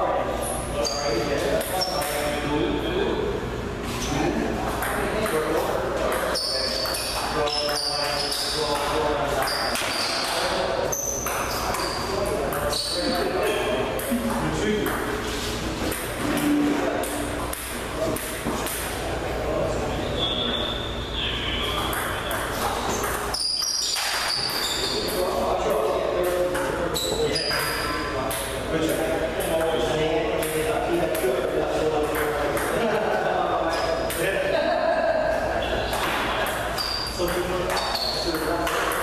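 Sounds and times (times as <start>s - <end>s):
people talking: 0.0s - 39.0s
table tennis ball hits: 4.8s - 11.9s, 15.8s - 19.0s, 21.8s - 25.2s, 32.0s - 32.8s, 35.9s - 39.0s.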